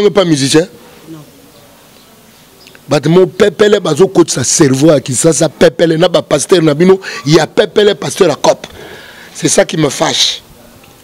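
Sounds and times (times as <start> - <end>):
man speaking: 0.0 - 1.3, 2.9 - 10.8
faint background noise: 0.0 - 11.0.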